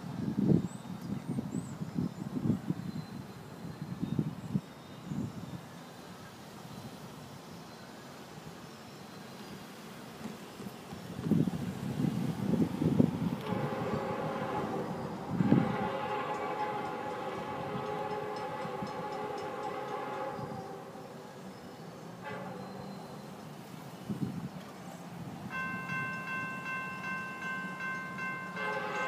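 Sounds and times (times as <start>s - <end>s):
wind buffeting microphone: 10.8s - 20.8s, 24.0s - 27.2s
train air horn chord: 13.4s - 21.2s, 22.2s - 23.0s, 27.8s - 29.0s.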